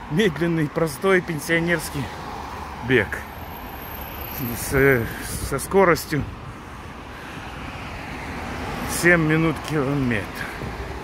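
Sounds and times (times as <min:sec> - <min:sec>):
road traffic car noise: 0:00.0 - 0:11.0.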